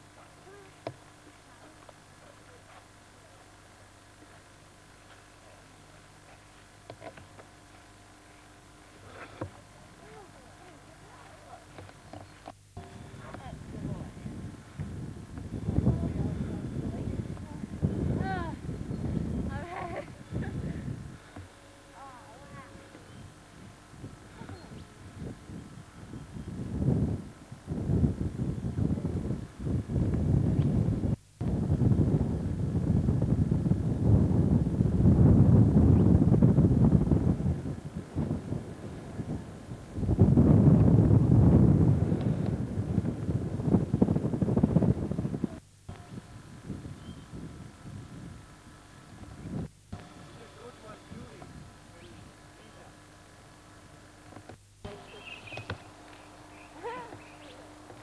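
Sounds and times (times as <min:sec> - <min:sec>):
wind buffeting microphone: 0:12.8 - 0:21.4, 0:22.1 - 0:52.3.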